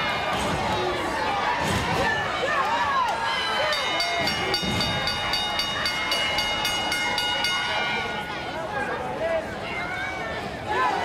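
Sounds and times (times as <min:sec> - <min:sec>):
ring bell struck rapidly: 0:03.5 - 0:09.0.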